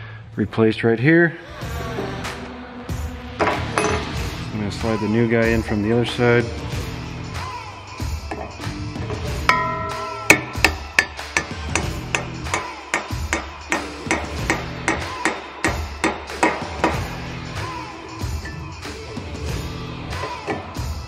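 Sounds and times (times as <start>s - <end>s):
background music: 0.0s - 21.0s
hammer striking metal driver: 9.4s - 17.1s.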